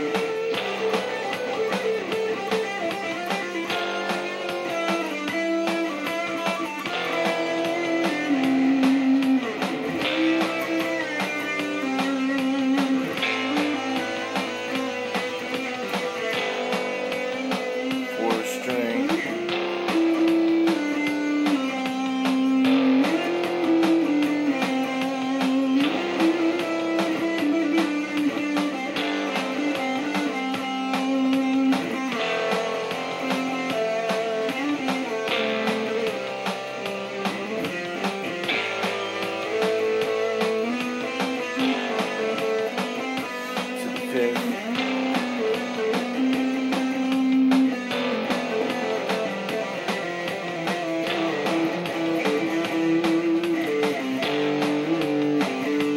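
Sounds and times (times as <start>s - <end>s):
backing track chord changes: 0.0s - 55.9s
electric guitar lead with slides: 0.0s - 55.9s.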